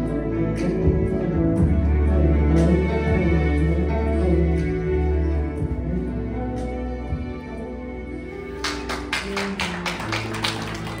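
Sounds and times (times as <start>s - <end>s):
low bass notes: 0.0s - 8.6s.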